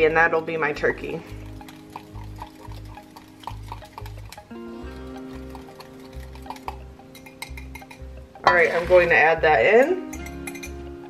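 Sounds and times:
whisk clicking against glass cup: 1.6s - 4.4s, 5.2s - 8.0s, 10.1s - 10.8s.

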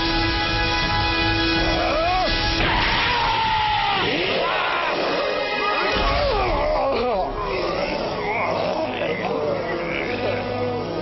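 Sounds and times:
dramatic background music: 0.0s - 11.0s
cartoon monster voices crying out: 3.2s - 10.6s.

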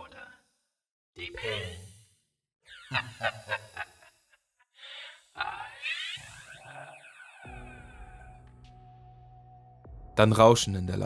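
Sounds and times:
distorted voice laughing: 2.7s - 4.1s, 5.4s - 8.5s
low music drone: 6.2s - 10.7s.

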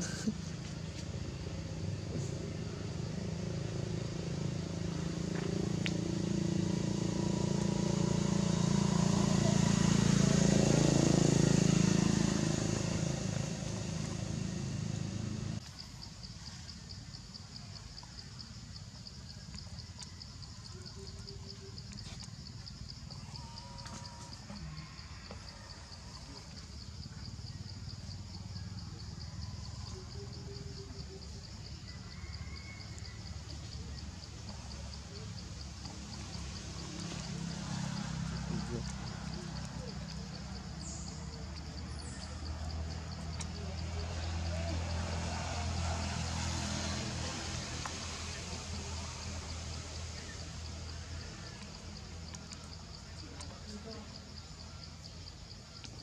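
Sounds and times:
motor vehicle running: 0.0s - 15.8s, 16.7s - 56.0s.

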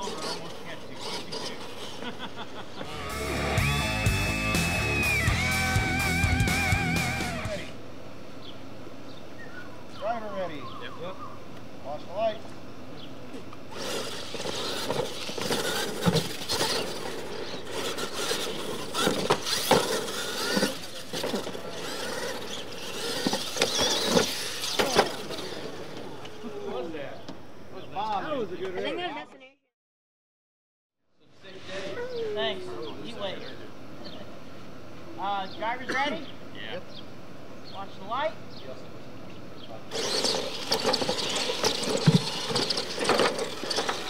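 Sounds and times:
toy monster trucks racing: 0.0s - 7.8s, 13.6s - 27.0s, 39.8s - 44.0s
trucks clicking and knocking on ramps: 13.4s - 26.4s, 39.9s - 44.0s.

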